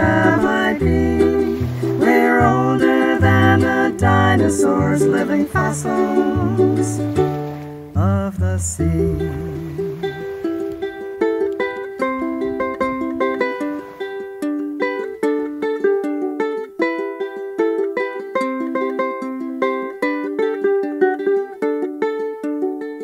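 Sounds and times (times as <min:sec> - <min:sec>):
ukulele plucked melody: 0:00.0 - 0:23.0.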